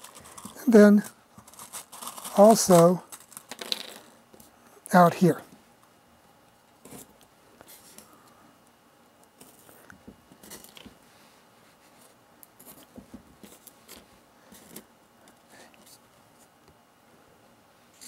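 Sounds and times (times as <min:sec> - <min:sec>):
small clicks and scrapes of pins: 0:00.0 - 0:04.5.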